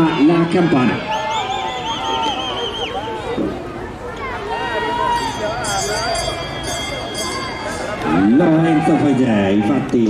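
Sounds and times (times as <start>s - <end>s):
crowd voices: 0.0s - 10.0s
hand bell ringing rapidly: 5.0s - 8.6s.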